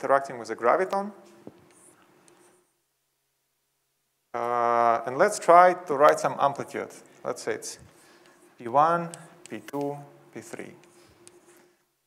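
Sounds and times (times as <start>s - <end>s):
chalk scratching blackboard: 10.6s - 11.8s.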